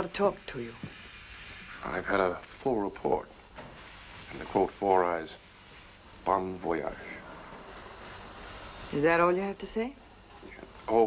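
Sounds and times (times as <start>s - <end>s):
low rushing noise: 6.0s - 9.3s.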